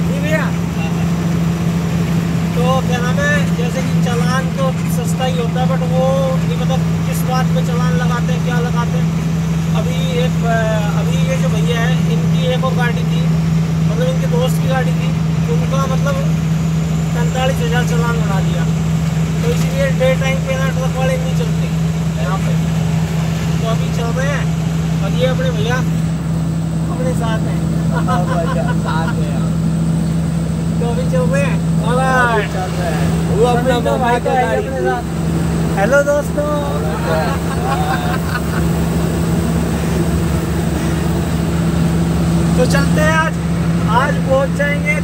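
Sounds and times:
man talking: 0.0s - 1.2s, 2.5s - 16.4s, 17.1s - 18.8s, 19.4s - 22.7s, 23.6s - 26.0s, 26.8s - 29.6s, 30.7s - 38.7s, 42.5s - 45.0s
truck engine droning: 0.0s - 45.0s
people laughing: 27.6s - 29.6s, 36.6s - 41.2s.

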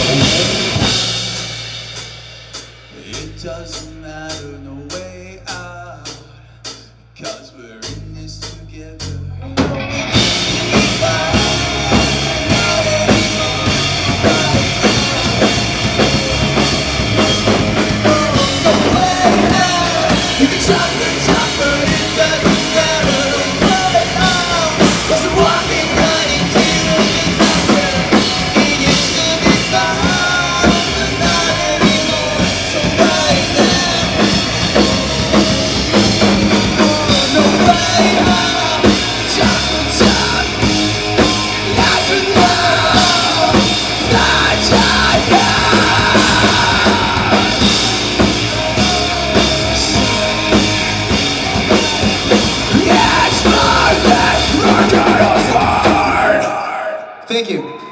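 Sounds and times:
electric guitars: 0.0s - 1.8s, 9.1s - 56.6s
drum kit: 0.0s - 57.9s
person singing into microphone: 9.8s - 15.6s, 17.8s - 35.3s, 36.5s - 57.9s.

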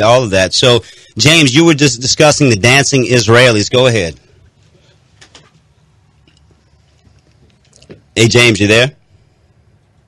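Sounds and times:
man's voice: 0.0s - 4.2s, 8.2s - 9.0s
faint hiss and hum: 0.0s - 10.0s.

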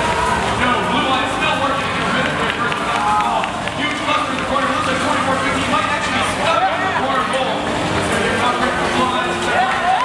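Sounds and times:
crowd noise: 0.0s - 10.0s
announcer over public address: 0.6s - 10.0s.

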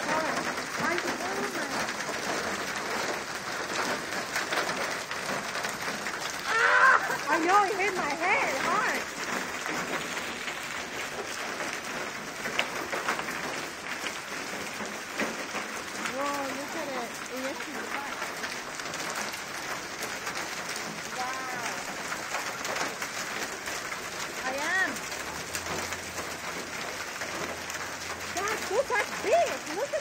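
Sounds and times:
hailstones clattering: 0.0s - 30.0s.

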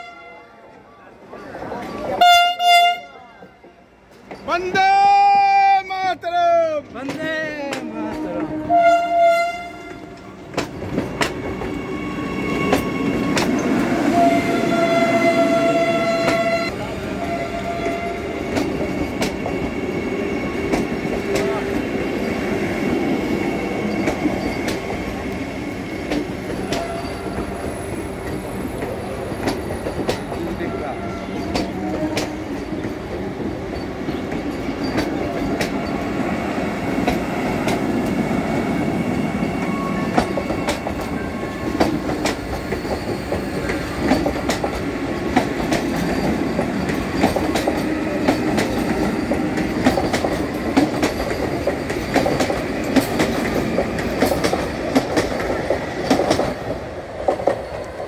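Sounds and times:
train horn: 0.0s - 0.6s, 2.2s - 3.5s, 8.0s - 10.2s, 14.0s - 18.4s, 26.6s - 27.4s, 30.7s - 32.5s
train wheels clicking over rail joints: 6.8s - 8.5s, 9.9s - 14.9s, 17.2s - 58.0s.

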